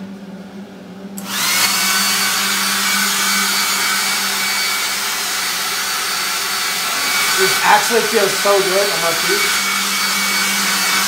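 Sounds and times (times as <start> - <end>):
hair dryer blowing with whine: 1.2 - 11.0.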